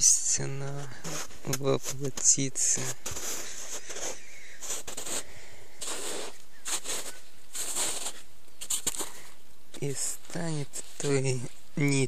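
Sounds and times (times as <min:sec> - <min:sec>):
footsteps crunching through snow: 0:00.7 - 0:12.0.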